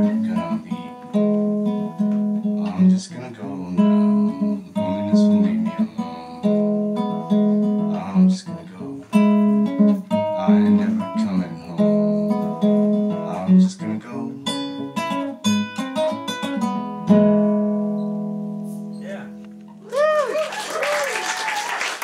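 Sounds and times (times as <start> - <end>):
nylon-string acoustic guitar: 0.0 - 19.8.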